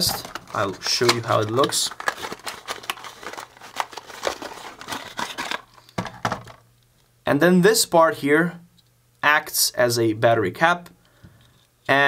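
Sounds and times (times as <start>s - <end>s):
cardboard box being opened: 0.0s - 5.7s.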